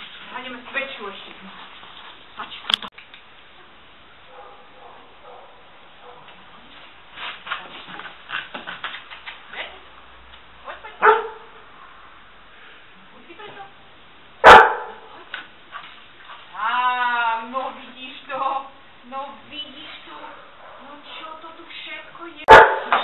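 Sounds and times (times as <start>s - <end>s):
dog barking: 4.3s - 6.3s, 11.0s - 11.6s, 14.4s - 15.1s, 22.5s - 23.0s.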